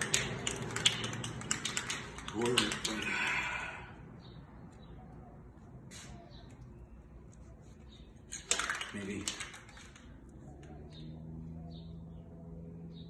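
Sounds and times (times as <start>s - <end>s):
spray can ball rattling: 0.0s - 3.1s, 8.3s - 10.3s
person speaking: 2.1s - 3.9s.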